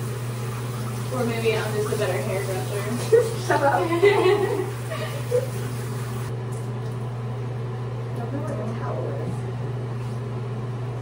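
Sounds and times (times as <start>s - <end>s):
exhaust fan humming: 0.0s - 11.0s
person laughing: 3.0s - 5.6s.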